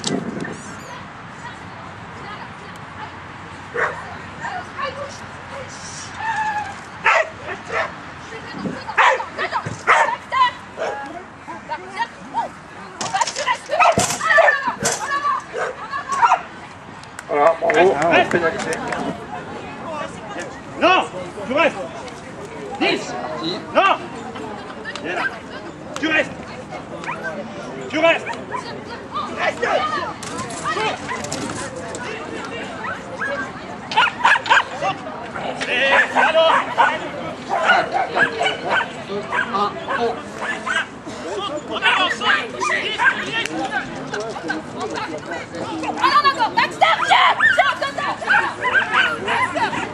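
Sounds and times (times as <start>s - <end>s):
people's voices: 0.0s - 49.9s
dog barking: 3.8s - 4.0s, 7.0s - 8.0s, 9.0s - 9.2s, 9.9s - 10.2s, 35.9s - 40.9s.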